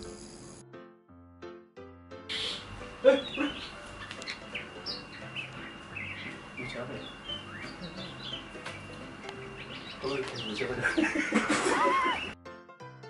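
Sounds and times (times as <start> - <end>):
birds chirping: 2.3 - 12.4.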